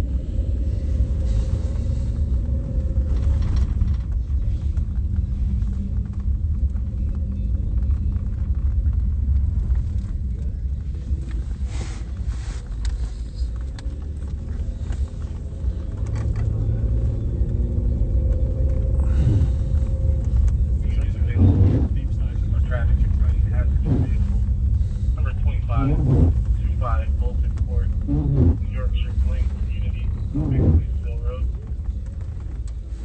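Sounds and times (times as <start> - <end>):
car engine and road rumble: 0.0 - 33.0
muffled voices: 20.6 - 32.5.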